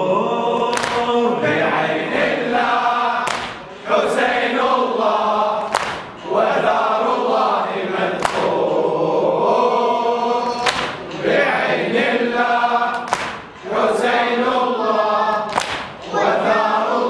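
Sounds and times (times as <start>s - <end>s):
men chanting in unison: 0.0s - 17.0s.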